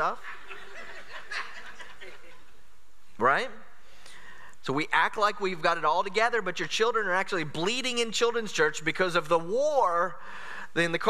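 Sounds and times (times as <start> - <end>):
people chuckling quietly: 0.2 - 2.6.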